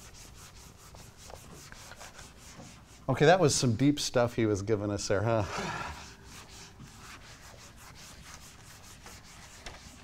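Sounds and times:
eraser rubbing on whiteboard: 0:00.0 - 0:03.8, 0:06.0 - 0:10.0.

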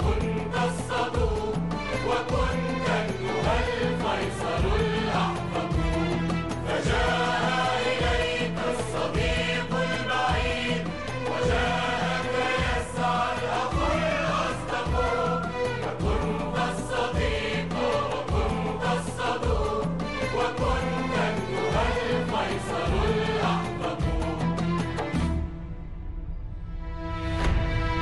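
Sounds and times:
low drum beat: 0:00.0 - 0:25.5
choir singing: 0:00.0 - 0:25.8.

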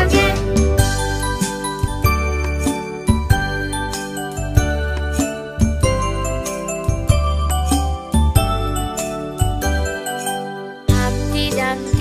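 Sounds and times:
steady bass line: 0:00.0 - 0:10.0.

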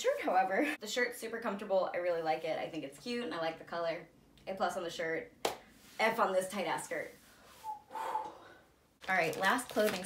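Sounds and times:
woman exhaling through the nose: 0:07.5 - 0:08.6.

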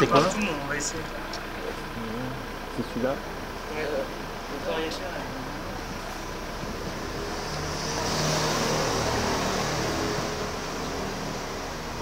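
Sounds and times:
city traffic: 0:00.0 - 0:12.0
vehicle passing: 0:04.6 - 0:12.0.

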